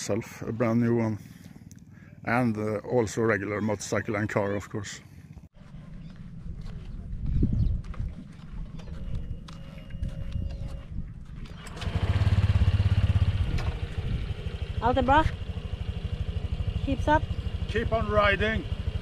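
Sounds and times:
scooter engine running: 8.4s - 19.0s.

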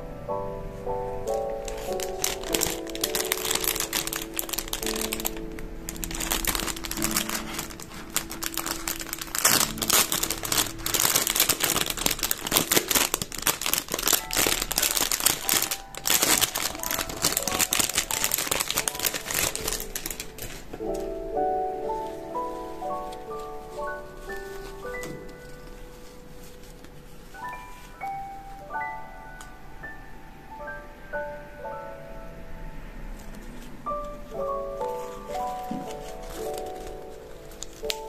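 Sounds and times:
soft background music: 0.0s - 38.0s
plastic bag crinkling: 1.2s - 28.6s, 34.3s - 38.0s.

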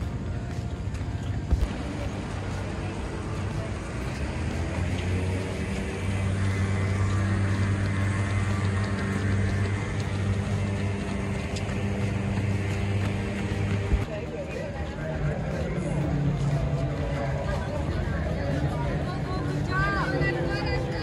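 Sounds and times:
low engine hum: 0.0s - 21.0s.

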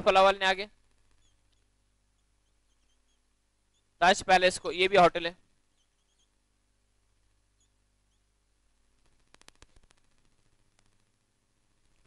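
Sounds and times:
low room hum: 0.0s - 12.0s
marker squeaking on whiteboard: 0.9s - 5.1s, 5.7s - 6.4s, 7.6s - 8.3s.

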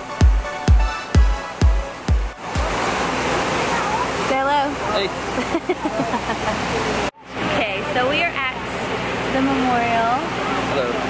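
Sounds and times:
electronic dance music: 0.0s - 2.9s
waterfall rushing: 0.0s - 7.5s.

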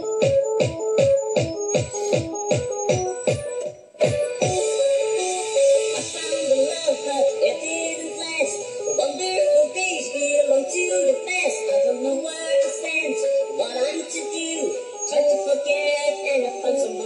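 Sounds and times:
kick drum: 0.0s - 4.8s
fast electronic dance music: 0.0s - 17.0s.

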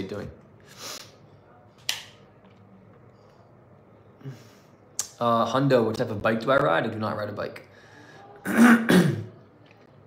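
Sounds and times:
man clearing his throat: 8.5s - 9.3s.

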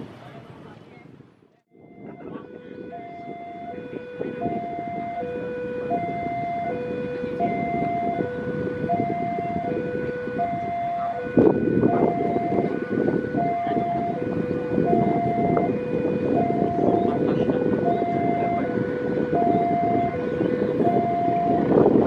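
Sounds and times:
level crossing two-tone alarm: 1.7s - 22.0s.

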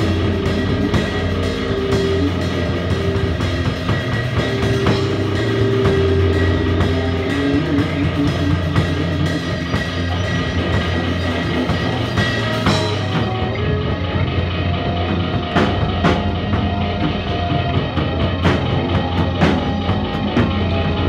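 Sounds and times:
steady low bass note: 0.0s - 18.3s
drums: 0.0s - 21.0s
live rock band: 0.0s - 21.0s.

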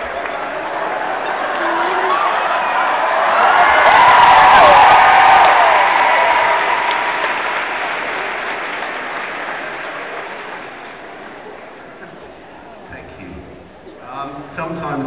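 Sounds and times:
audience cheering: 0.0s - 11.5s
audience applauding: 0.0s - 12.2s.

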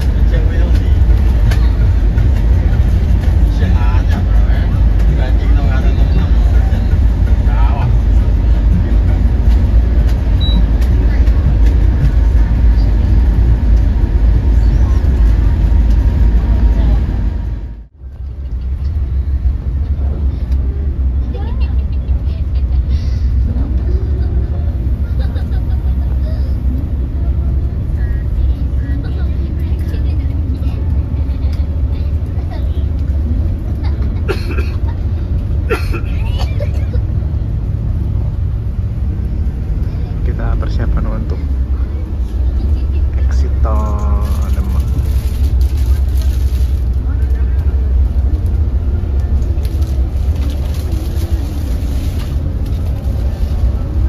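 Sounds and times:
bus engine and road rumble: 0.0s - 54.0s.

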